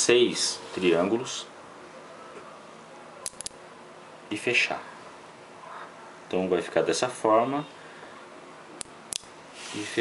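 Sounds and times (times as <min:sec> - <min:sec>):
faint room hiss: 0:00.0 - 0:10.0
magnet spheres snapping together: 0:03.2 - 0:03.6.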